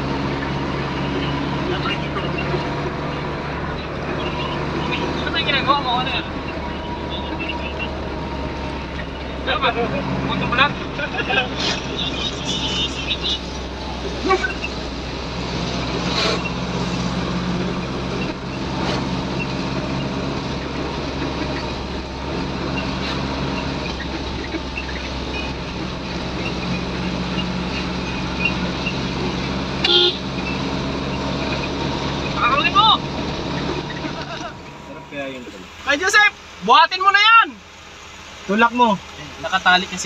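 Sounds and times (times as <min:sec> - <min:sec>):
vehicle engine drone: 0:00.0 - 0:40.0.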